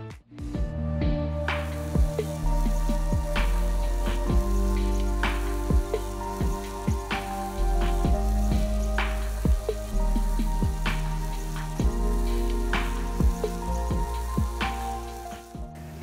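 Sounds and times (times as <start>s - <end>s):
background music with beat: 0.0s - 16.0s.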